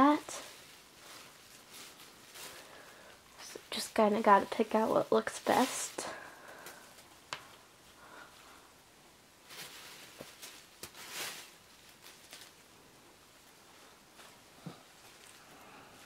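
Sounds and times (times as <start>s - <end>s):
rustling of herbs and plastic bag: 0.0s - 16.0s.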